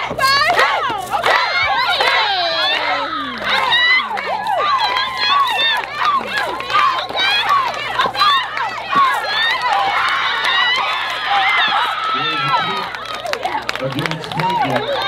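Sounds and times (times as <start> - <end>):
girls shouting and whooping: 0.0 - 13.6
hand clapping: 0.5 - 15.0.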